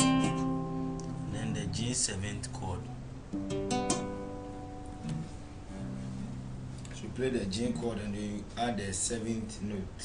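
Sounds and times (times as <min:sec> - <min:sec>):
acoustic guitar chord: 0:00.0 - 0:07.2.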